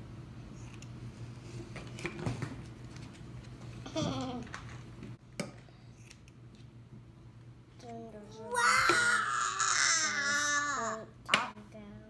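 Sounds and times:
toddler squealing cry: 8.5 - 11.0.

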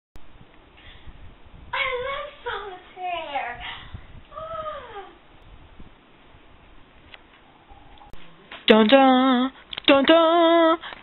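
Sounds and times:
faint room noise: 0.2 - 11.0.

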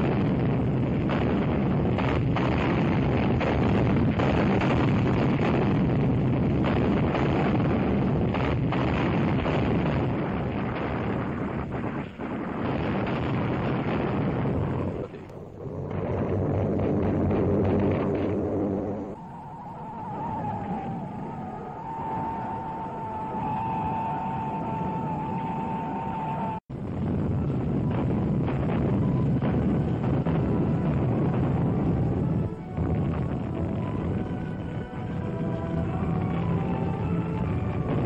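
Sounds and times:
dense low rumble: 0.0 - 23.4, 26.6 - 38.0
film soundtrack music: 28.6 - 38.0.

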